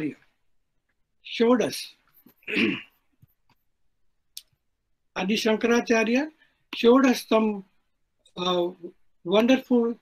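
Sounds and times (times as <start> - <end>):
man clearing his throat: 2.4 - 3.0.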